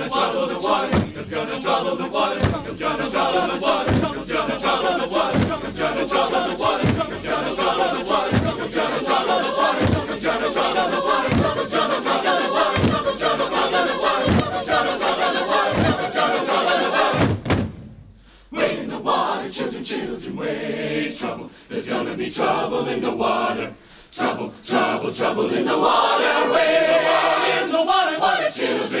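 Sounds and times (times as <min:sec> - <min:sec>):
choir singing: 0:00.0 - 0:17.5, 0:18.5 - 0:29.0
low thuds keeping a beat: 0:00.0 - 0:18.3.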